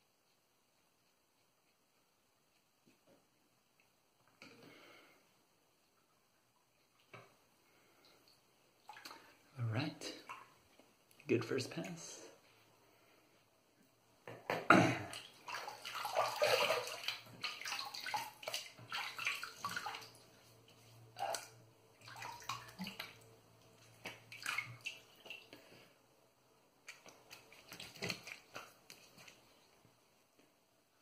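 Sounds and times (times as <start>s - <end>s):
water splashing from sink: 15.1s - 20.3s, 21.2s - 23.3s, 23.9s - 25.5s.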